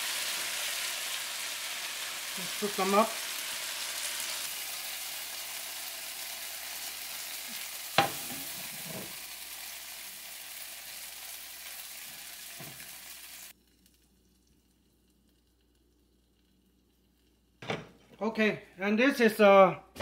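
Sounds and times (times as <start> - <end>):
food sizzling in a wok: 0.0 - 14.1
utensil knocking on wok: 8.0 - 9.1.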